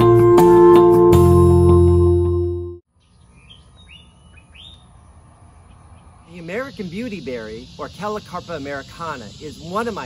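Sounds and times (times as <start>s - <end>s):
small bird chirping: 2.9s - 10.0s
steady high hiss: 6.1s - 10.0s.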